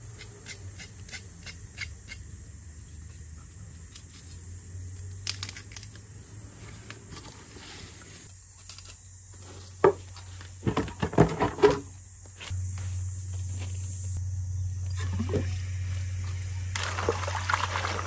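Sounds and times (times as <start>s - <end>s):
plastic basins clunking: 10.6s - 11.9s
high insect buzz: 11.7s - 18.0s.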